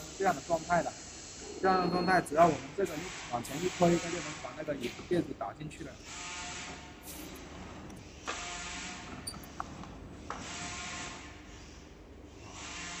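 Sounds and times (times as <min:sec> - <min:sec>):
cartoning machine hissing and whining: 0:00.0 - 0:05.3.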